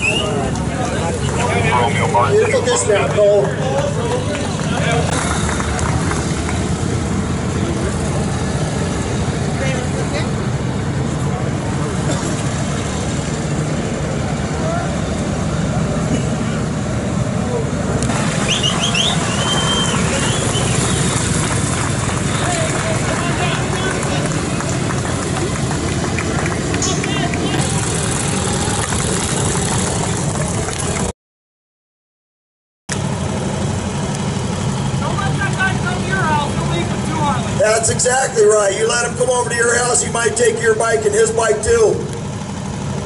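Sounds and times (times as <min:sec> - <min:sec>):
motorcycle engines running: 0:00.0 - 0:31.1, 0:32.9 - 0:43.0.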